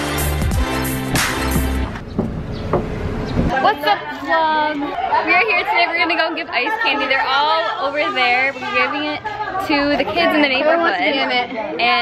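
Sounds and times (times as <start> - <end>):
car cabin rumble: 1.5 - 3.5
faint knocks: 2.0 - 3.5
women chattering: 3.5 - 12.0.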